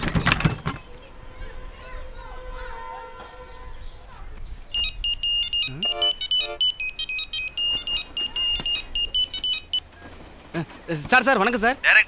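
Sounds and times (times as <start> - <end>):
mobile phone ringtone beeping: 4.7 - 9.8.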